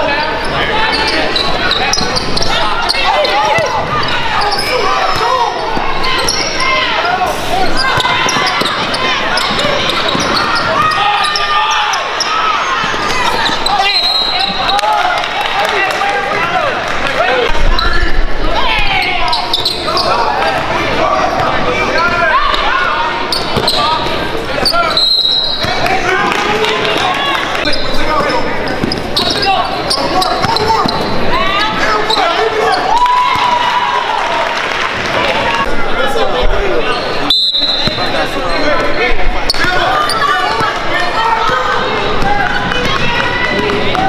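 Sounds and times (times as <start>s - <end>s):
people shouting and talking: 0.0s - 44.0s.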